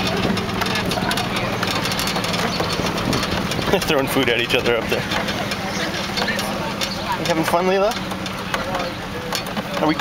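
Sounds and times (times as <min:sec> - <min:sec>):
faint voices: 0:00.0 - 0:10.0
vehicle engine humming: 0:00.0 - 0:10.0.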